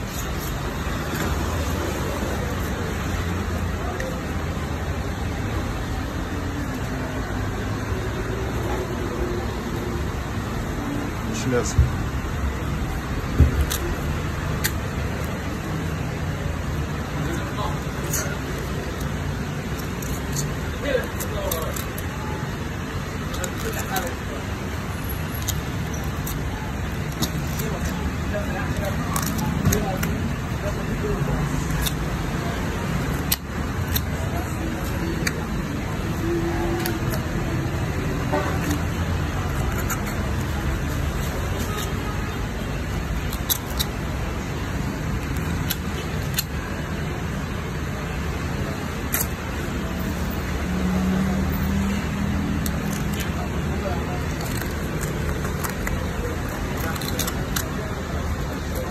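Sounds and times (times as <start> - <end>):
faint background voices: 0.0 - 58.9
street traffic rumble: 0.0 - 58.9.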